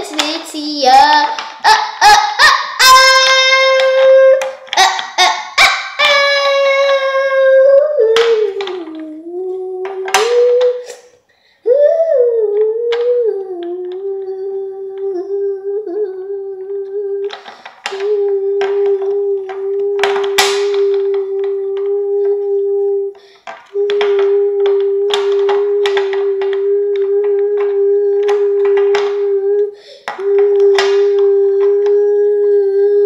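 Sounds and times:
plastic toys clicking and rattling: 0.0 - 2.4, 3.0 - 7.2, 8.1 - 9.2, 17.2 - 22.6, 23.2 - 32.0
girl humming: 1.1 - 33.0.

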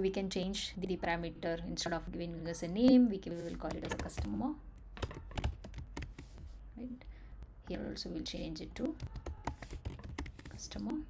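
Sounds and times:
computer keyboard typing: 3.6 - 6.4, 9.0 - 11.0.

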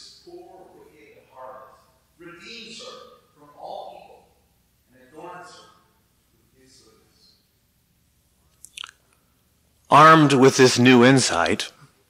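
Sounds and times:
man speaking: 0.0 - 7.4, 9.9 - 11.9.

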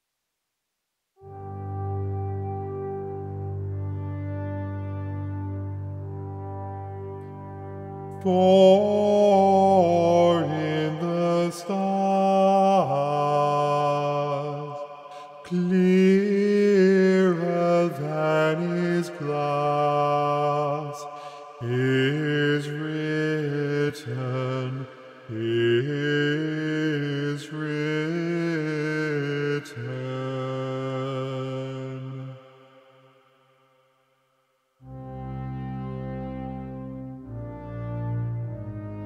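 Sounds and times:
choir singing slow chords: 1.2 - 33.7, 34.8 - 39.0.

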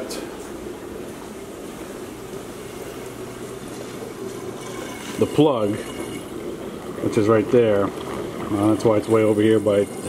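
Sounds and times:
water rushing through tanks: 0.0 - 10.0.

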